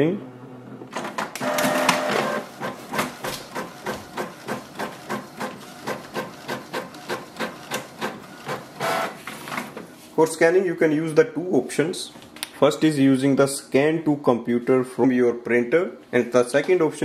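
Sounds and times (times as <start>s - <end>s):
printer whir: 0.5s - 10.0s
printer motor whine: 0.6s - 9.8s
printer carriage clicking: 1.0s - 9.8s.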